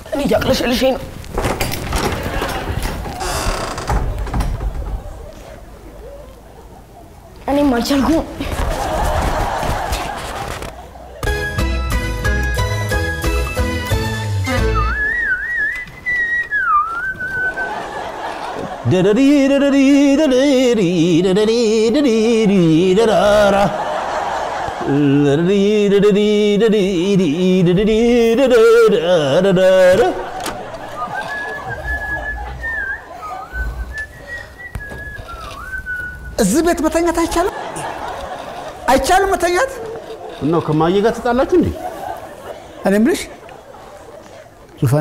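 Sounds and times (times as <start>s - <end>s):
person whistling a tune: 14.5s - 17.7s, 31.3s - 36.4s.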